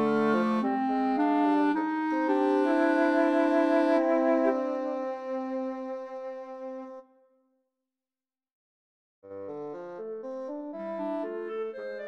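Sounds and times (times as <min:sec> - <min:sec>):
woodwind trio sustained chord: 0:00.0 - 0:07.0.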